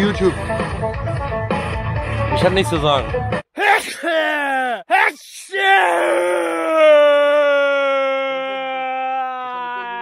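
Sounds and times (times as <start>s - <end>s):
man yelling: 3.5s - 10.0s.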